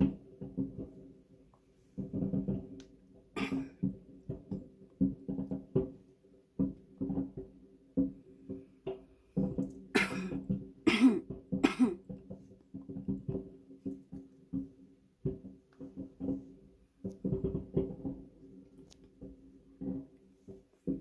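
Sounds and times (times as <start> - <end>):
muffled distant fireworks bangs: 2.0 - 2.8
person coughing: 3.4 - 3.8, 10.0 - 12.0.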